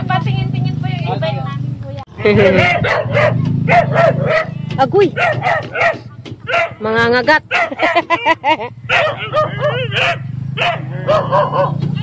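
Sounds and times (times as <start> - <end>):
dog barking: 2.4 - 11.9.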